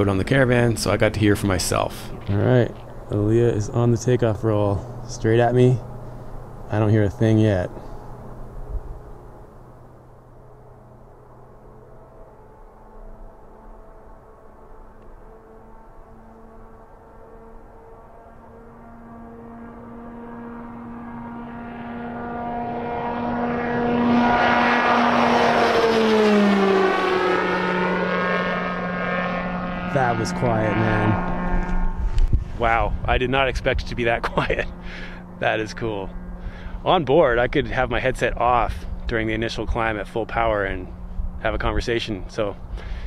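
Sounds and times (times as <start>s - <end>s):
electric aircraft taking off: 0.0s - 43.0s.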